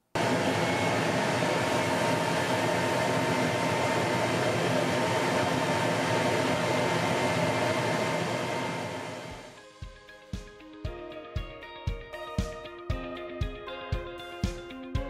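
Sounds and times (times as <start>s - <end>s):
laser engraver fans whirring: 0.2s - 9.6s.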